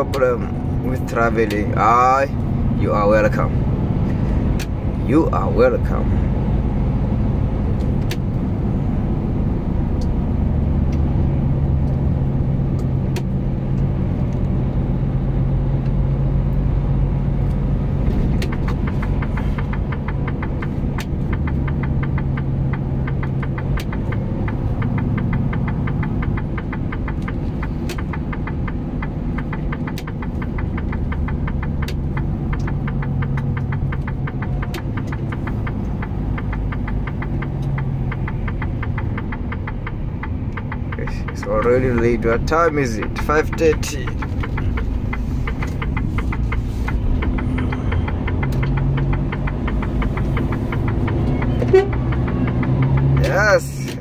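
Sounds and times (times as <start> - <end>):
road noise: 0.0 - 54.0
truck engine running: 0.0 - 54.0
sharp clicks: 17.4 - 54.0.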